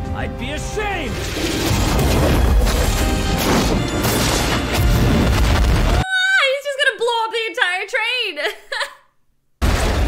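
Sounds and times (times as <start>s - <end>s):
film soundtrack music: 0.0s - 6.0s
loud booming crashes: 1.0s - 6.0s, 9.6s - 10.0s.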